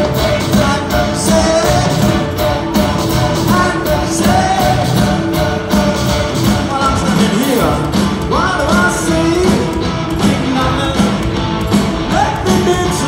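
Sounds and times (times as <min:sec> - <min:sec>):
man singing: 0:00.0 - 0:11.4, 0:12.0 - 0:13.0
drums beating: 0:00.0 - 0:13.0
live rock band playing: 0:00.0 - 0:13.0.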